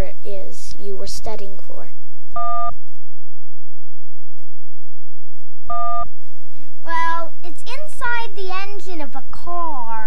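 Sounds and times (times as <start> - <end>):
short electronic beep: 2.4 - 2.8, 5.7 - 6.1.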